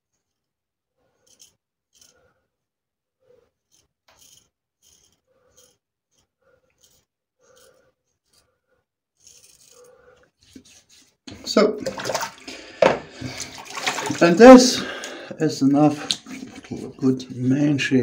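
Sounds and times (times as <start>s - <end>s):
razor scraping stubble: 1.0s - 2.4s, 3.2s - 11.2s.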